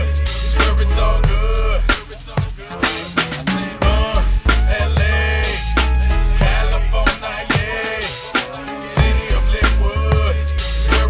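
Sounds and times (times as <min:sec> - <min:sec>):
hip-hop track with deep bass: 0:00.0 - 0:11.0.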